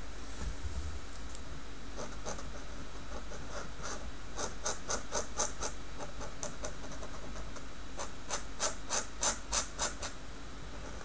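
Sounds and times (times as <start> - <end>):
pen nib scratching paper: 2.0 - 10.2.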